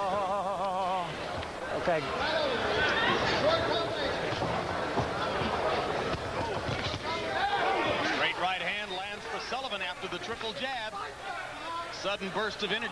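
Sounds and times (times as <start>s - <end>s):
crowd shouting and cheering: 0.0s - 12.9s.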